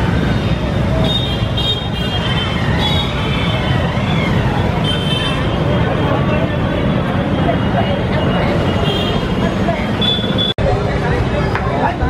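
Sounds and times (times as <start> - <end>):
crowd talking: 0.0 - 12.0
street traffic din: 0.0 - 12.0.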